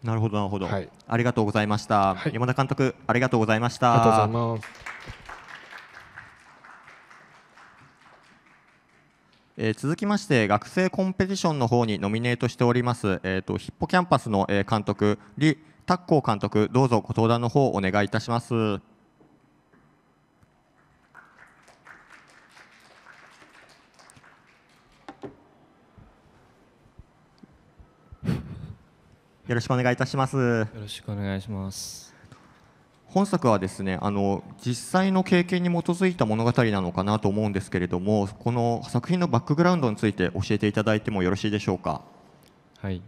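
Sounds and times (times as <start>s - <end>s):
audience applause: 4.0s - 9.5s, 20.8s - 25.4s.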